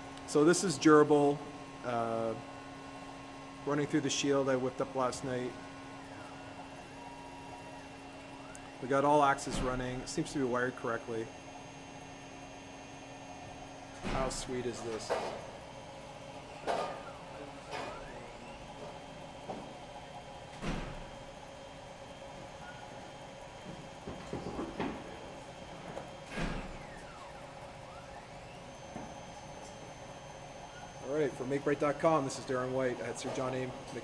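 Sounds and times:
spindle motor humming: 0.0 - 34.0
stepper motor axis moves: 2.4 - 21.2, 26.2 - 34.0.

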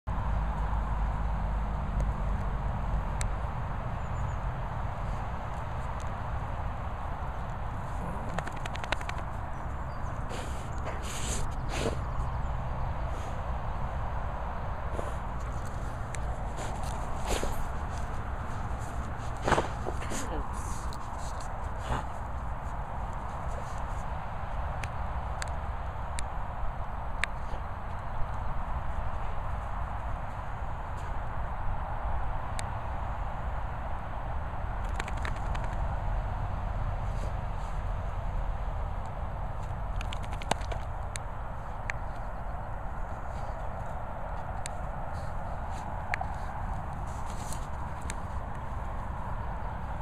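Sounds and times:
wind rumble on microphone: 0.1 - 50.0
dog pawing at loose soil: 7.7 - 12.3, 14.9 - 24.1
sharp clicks: 8.0 - 9.5, 34.8 - 35.8, 39.6 - 42.0.

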